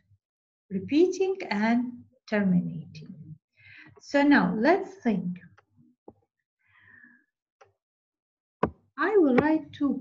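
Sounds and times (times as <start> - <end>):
faint breath-like noise: 6.6 - 7.3.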